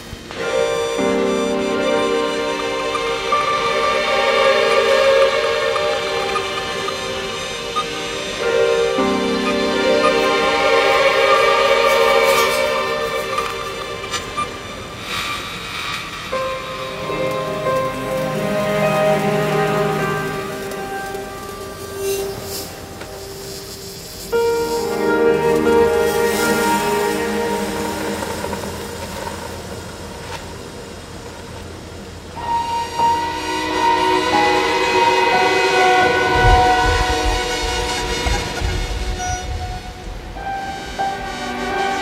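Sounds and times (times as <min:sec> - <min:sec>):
string ensemble playing chords: 0:00.0 - 0:15.3, 0:16.3 - 0:30.1, 0:32.4 - 0:42.0.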